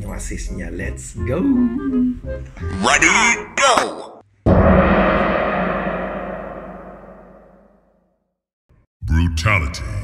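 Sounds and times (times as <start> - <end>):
deep gong-like ringing: 4.5 - 7.7.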